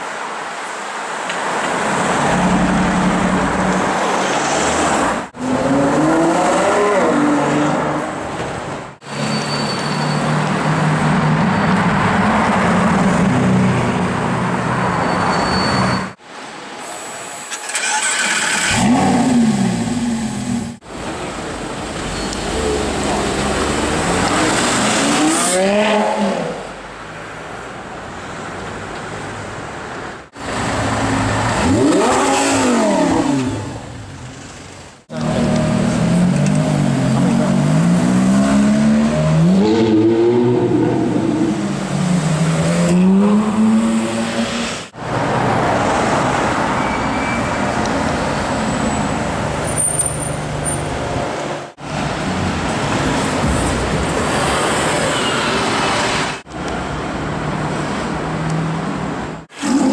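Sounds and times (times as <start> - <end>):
supercar engines revving: 17.8 - 20.8, 30.5 - 34.0.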